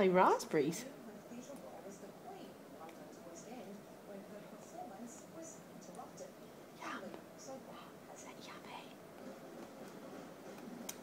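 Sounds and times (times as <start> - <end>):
faint whispering: 4.4 - 9.0.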